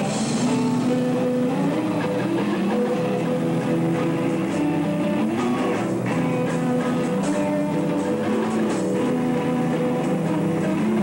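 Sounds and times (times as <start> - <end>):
guitar-led rock music: 0.0 - 11.0.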